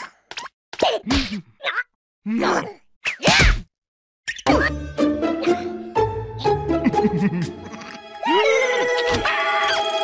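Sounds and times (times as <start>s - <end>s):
cartoon whack sound effect: 3.1s - 3.7s
background music: 4.5s - 10.0s.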